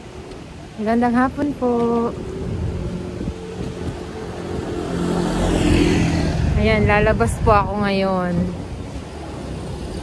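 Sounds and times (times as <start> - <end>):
vehicle passing: 1.6 - 10.0.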